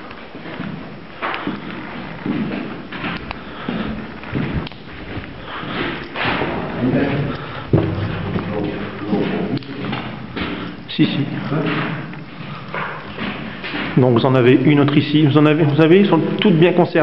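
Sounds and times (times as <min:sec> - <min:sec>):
dull thumps and knocks: 0:07.6 - 0:14.4.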